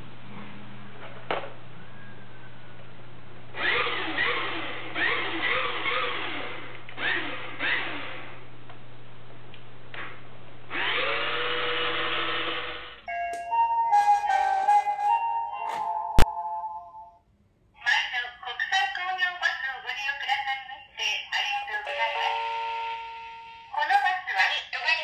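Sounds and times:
small electric motor whine: 10.7 - 13.0
music: 13.1 - 17.2.

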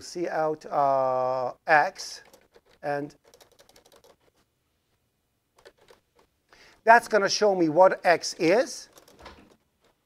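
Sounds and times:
computer keyboard typing: 2.2 - 4.3, 5.6 - 6.3, 8.3 - 10.0.

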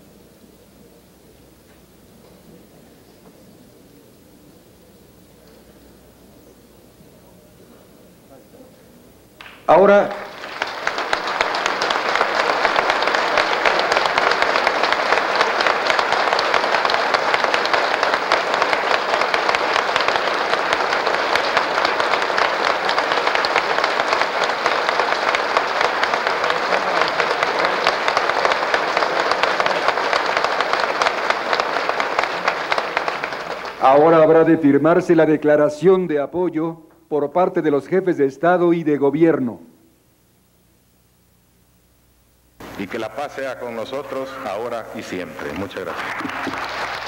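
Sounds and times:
crowd applauding: 9.4 - 34.5, 42.6 - 47.0.

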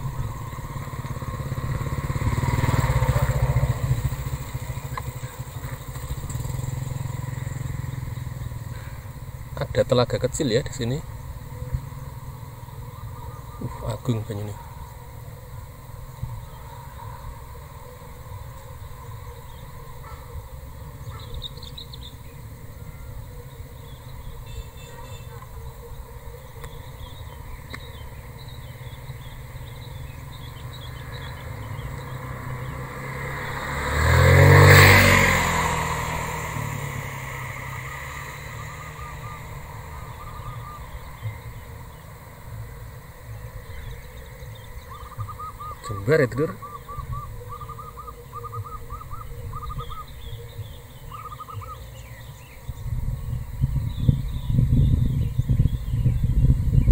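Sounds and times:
vehicle engine passing by: 0.0 - 56.9.

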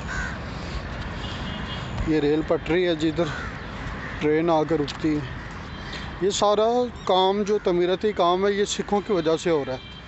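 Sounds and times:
crow cawing: 0.0 - 0.5, 3.2 - 6.1, 7.4 - 7.9.

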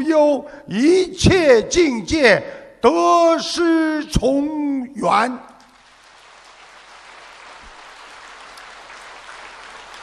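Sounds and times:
large audience applauding: 5.7 - 10.0.

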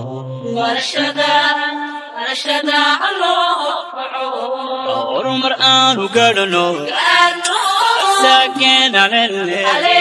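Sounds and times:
a cappella singing voices: 0.0 - 10.0.

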